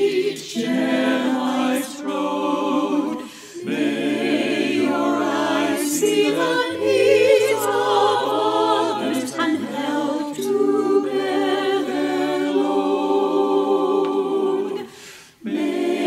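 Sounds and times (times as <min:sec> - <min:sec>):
mixed choir singing a hymn: 0:00.0 - 0:16.0.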